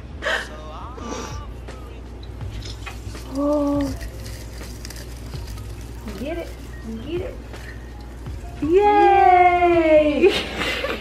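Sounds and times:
artificial tree branches crackling: 2.2 - 10.3.

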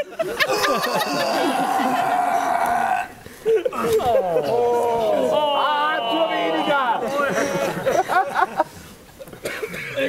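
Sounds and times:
people laughing: 0.0 - 9.4
person's drawn-out vocal cry: 0.5 - 3.2
voices talking: 3.8 - 8.0.

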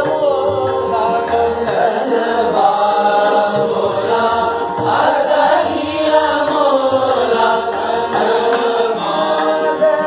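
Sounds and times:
group singing in unison: 0.0 - 10.0
tanpura drone: 0.0 - 10.0.

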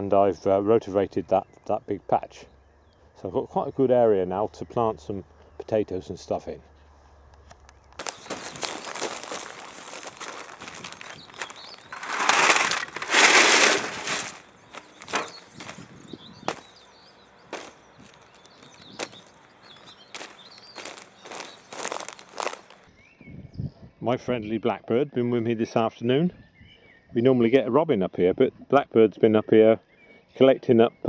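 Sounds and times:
stones tipped onto plastic sheet: 8.0 - 15.8.

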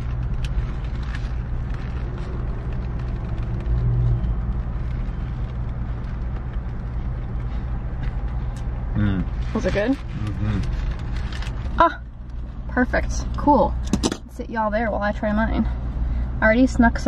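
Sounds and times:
short low hummed sound: 0.0 - 14.4
car engine and fan humming: 0.0 - 17.0.

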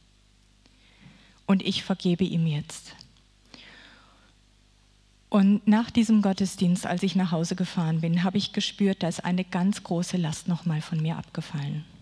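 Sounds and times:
faint breath at microphone: 3.5 - 4.4.

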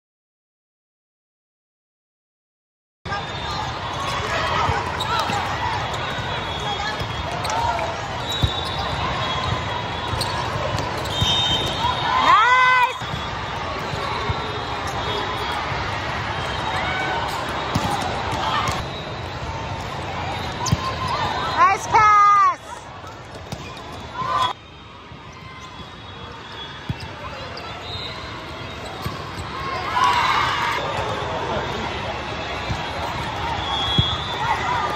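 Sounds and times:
sneakers squeaking on court: 3.2 - 12.0, 16.4 - 21.6, 23.0 - 24.5, 25.3 - 29.9
volleyball hits: 16.5 - 18.8
murmur of voices: 26.5 - 34.9.

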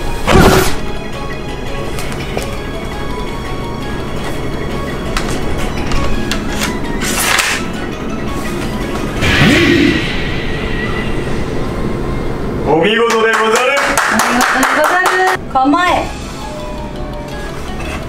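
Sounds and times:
background music: 0.0 - 14.1, 14.9 - 18.0
whooshing swish effects: 9.2 - 12.6.

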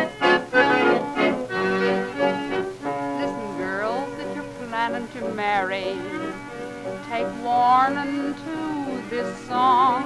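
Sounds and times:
instrumental passage on old record: 0.0 - 10.0.

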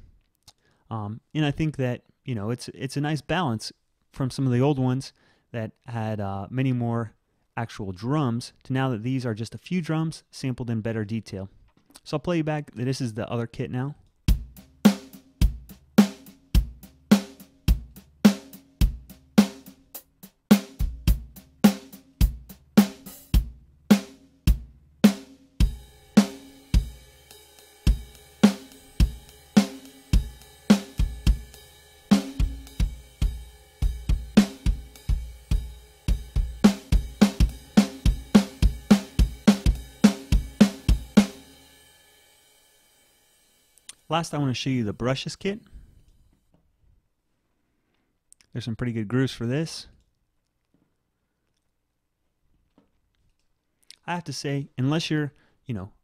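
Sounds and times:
drum kit country groove: 14.3 - 41.7.

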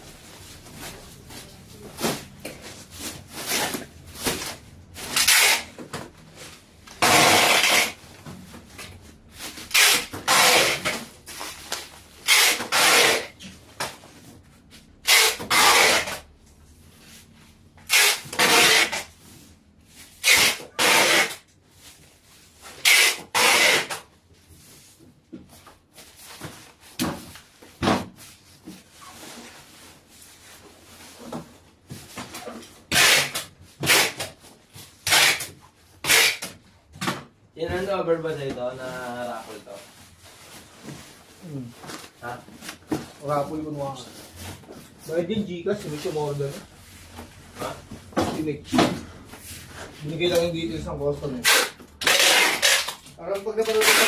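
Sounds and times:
bubble wrap and plastic crinkling: 0.0 - 15.0, 37.7 - 48.5.

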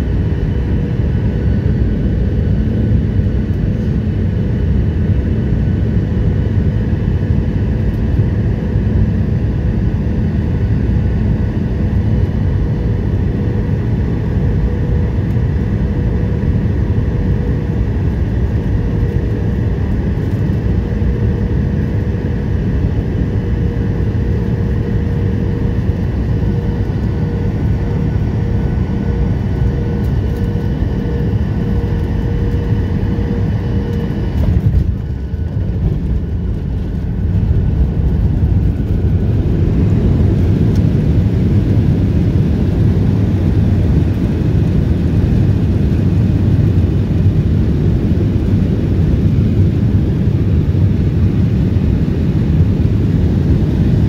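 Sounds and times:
jet engine and airflow rush: 0.0 - 54.0.

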